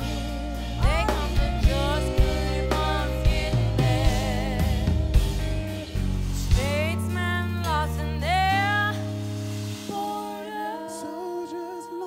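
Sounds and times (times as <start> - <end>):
band sustained low notes: 0.0 - 7.6.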